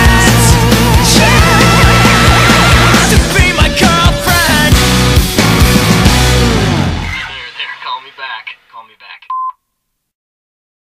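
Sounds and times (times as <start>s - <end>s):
soundtrack music: 0.0s - 8.4s.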